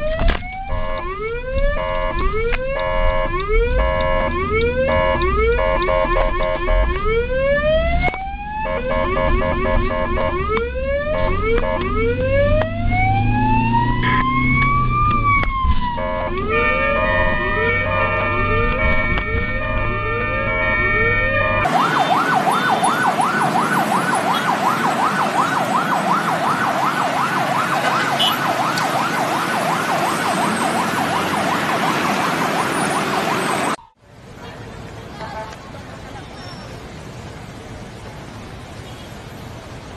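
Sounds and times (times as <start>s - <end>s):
ambulance siren: 0.0s - 34.0s
vehicle engine rumble: 0.0s - 39.9s.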